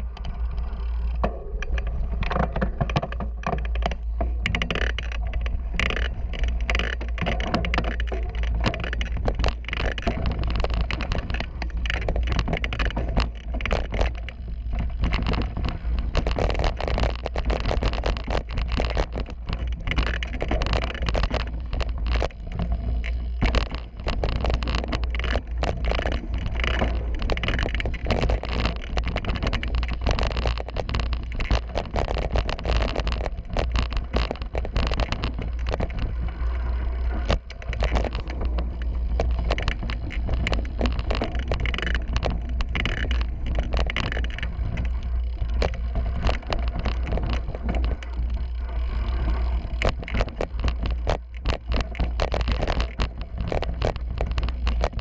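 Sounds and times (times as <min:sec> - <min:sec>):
bike chain and frame rattling: 0:00.0 - 0:55.0
wind rumble on microphone: 0:00.0 - 0:55.0.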